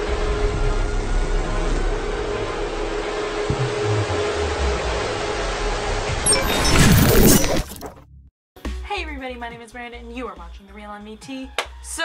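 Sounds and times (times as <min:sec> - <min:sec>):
loud shattering crash: 0:06.2 - 0:08.0.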